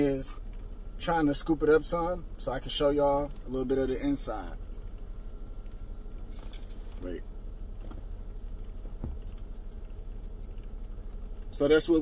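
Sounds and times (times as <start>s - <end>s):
low hum inside a car: 0.0s - 12.0s.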